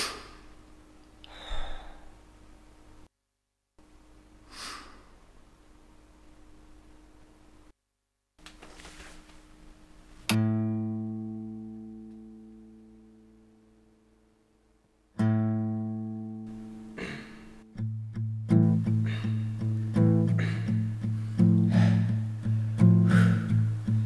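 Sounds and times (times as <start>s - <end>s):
rhythmic guitar strumming: 10.3s - 13.3s, 15.2s - 24.0s
guitar chords ringing: 10.3s - 14.3s, 15.2s - 24.0s.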